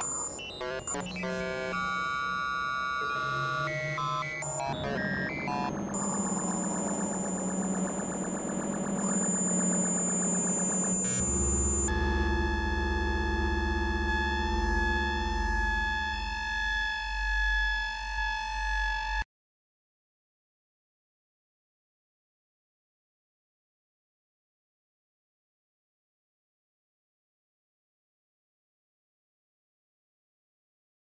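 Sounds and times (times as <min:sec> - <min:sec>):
experimental electronic noise music: 0:00.0 - 0:19.2.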